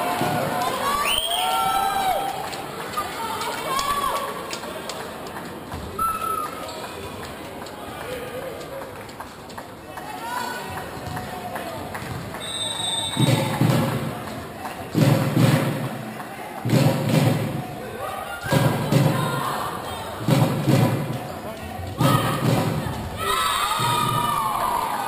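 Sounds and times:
shouting and chatter in sports hall: 0.0s - 25.0s.

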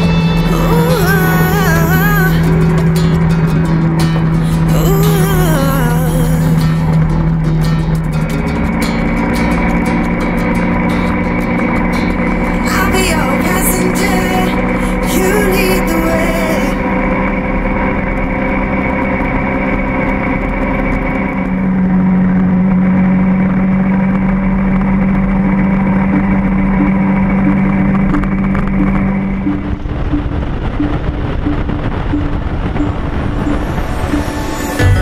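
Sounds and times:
motorcycle engine running: 0.0s - 35.0s
wind and road noise: 0.0s - 35.0s.

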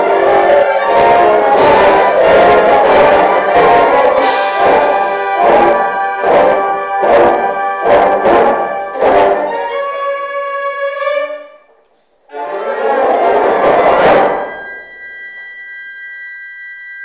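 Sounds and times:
concert band playing chords: 0.0s - 9.6s.

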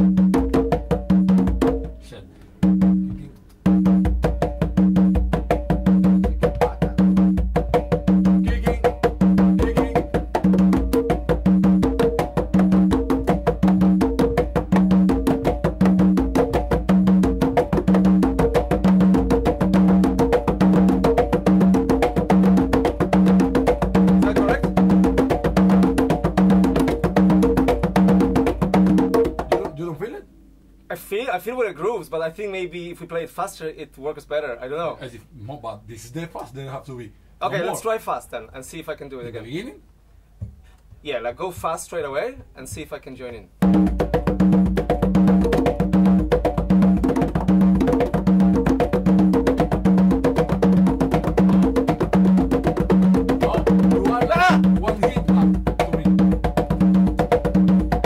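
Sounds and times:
conga drums played by hand: 0.0s - 30.1s, 40.4s - 43.0s, 43.6s - 58.0s.

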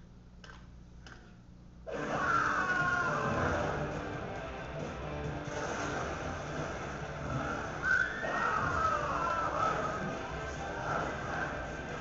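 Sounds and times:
trailer music over speakers: 2.2s - 12.0s
loud high sliding cry: 7.5s - 10.1s.

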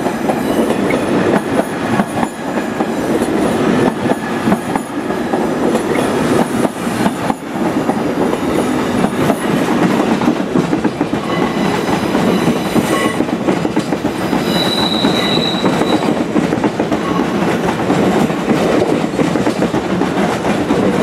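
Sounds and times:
train wheels rumbling on rail: 0.0s - 21.0s
wheels clicking over rail joints: 0.6s - 21.0s.

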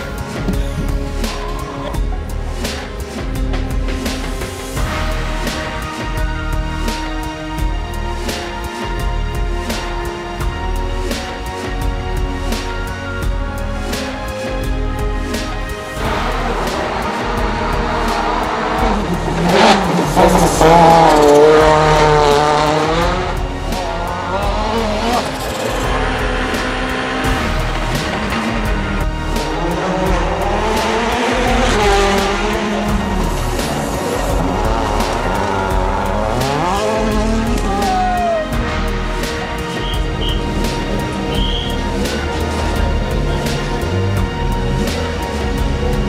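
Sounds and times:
music: 0.0s - 46.0s
rally car engine revving hard: 15.8s - 37.9s, 38.6s - 46.0s.

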